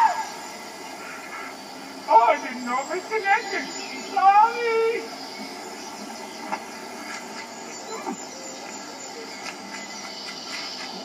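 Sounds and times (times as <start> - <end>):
steady tape hiss: 0.0 - 11.0.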